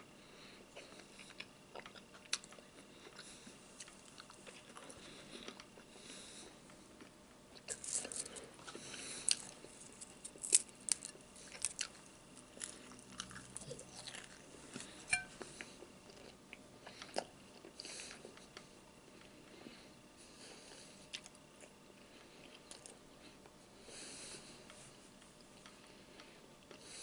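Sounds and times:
man chewing bacon: 0.4s - 27.0s.

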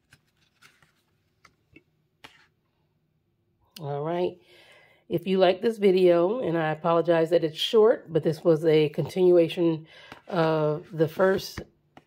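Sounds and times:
paper rustles and taps: 2.2s - 2.5s, 11.2s - 12.0s.

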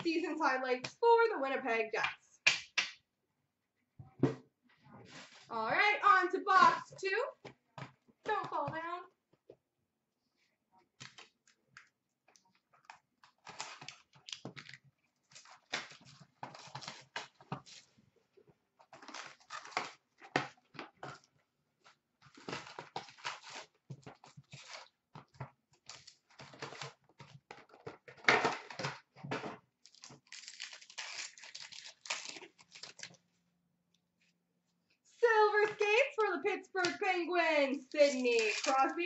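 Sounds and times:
packaging crinkling and tearing: 12.8s - 17.9s, 18.9s - 20.2s, 22.2s - 25.0s, 25.8s - 27.8s, 29.8s - 33.2s, 38.0s - 39.0s.

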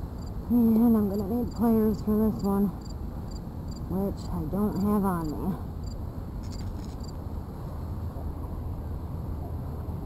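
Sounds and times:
crickets chirping: 0.0s - 0.5s, 1.1s - 3.9s, 4.7s - 7.2s
steady low rumble: 0.0s - 10.0s.

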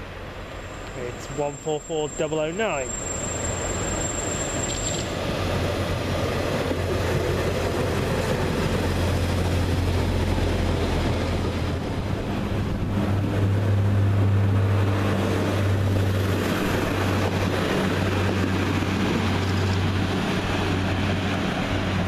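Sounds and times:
diesel engines droning: 0.0s - 22.0s
train wheels rumbling on rails: 0.0s - 22.0s.

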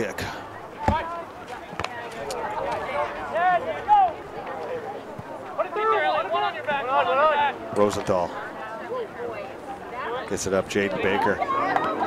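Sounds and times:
people calling out and talking: 0.0s - 12.0s.

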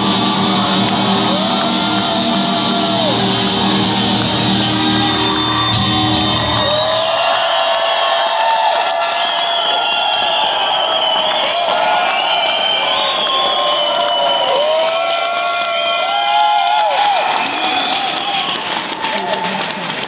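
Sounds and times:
acoustic guitar notes ringing: 0.0s - 6.6s
audience cheering and whooping: 0.0s - 19.7s
long whistles: 4.7s - 7.2s, 9.0s - 14.6s.

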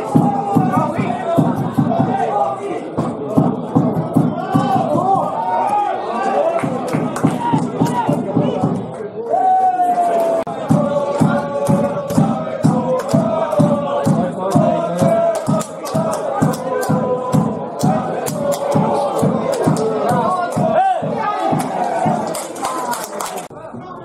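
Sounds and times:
steady drum beat: 0.0s - 5.4s, 6.6s - 8.9s, 10.5s - 22.9s
supporters chanting in unison: 0.0s - 23.5s.

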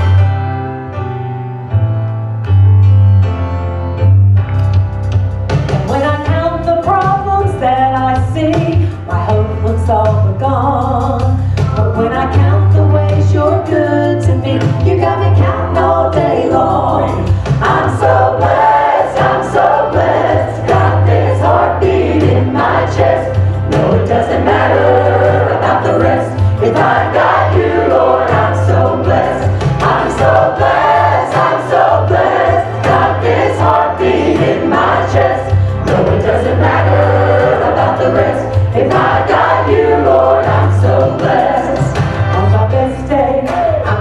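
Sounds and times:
woman singing lead: 5.9s - 18.4s, 38.8s - 44.0s
gospel choir singing: 12.4s - 44.0s.

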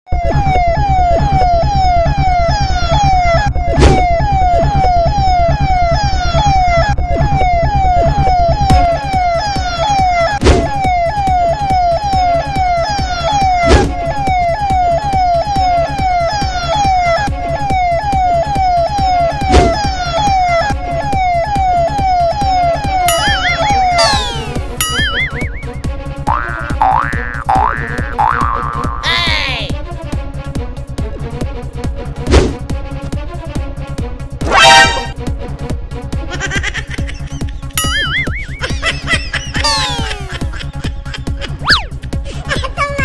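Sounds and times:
low pulsing beat: 0.1s - 12.8s, 17.2s - 34.2s, 37.5s - 42.7s
police siren wail: 0.1s - 25.8s, 38.6s - 40.7s
springy boing effect: 23.1s - 29.1s, 34.5s - 35.1s, 37.8s - 38.6s, 39.6s - 40.1s.

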